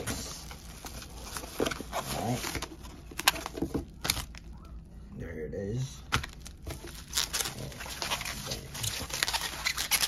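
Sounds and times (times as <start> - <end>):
packing paper rustling: 0.0 - 4.5, 6.1 - 10.0
bubble wrap crinkling: 6.1 - 10.0.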